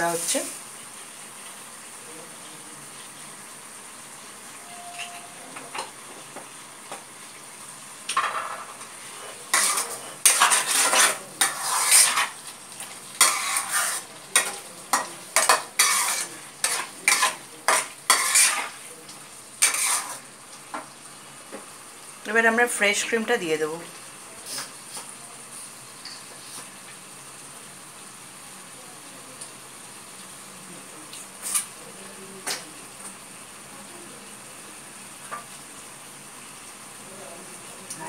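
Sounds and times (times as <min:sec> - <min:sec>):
food sizzling in a pan: 0:00.0 - 0:38.0
spatula scraping in a pan: 0:08.2 - 0:18.9, 0:19.5 - 0:20.8, 0:24.4 - 0:26.8, 0:31.4 - 0:31.7.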